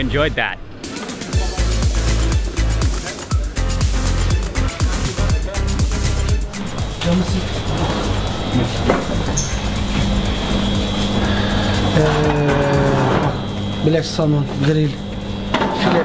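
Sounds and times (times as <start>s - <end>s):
background music with held notes: 0.8s - 16.0s
low voices: 1.4s - 16.0s.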